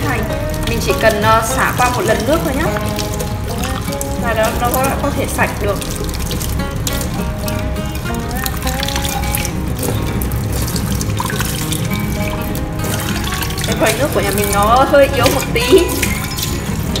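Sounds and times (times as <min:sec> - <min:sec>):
background music: 0:00.0 - 0:17.0
tap water running over pan: 0:00.0 - 0:17.0.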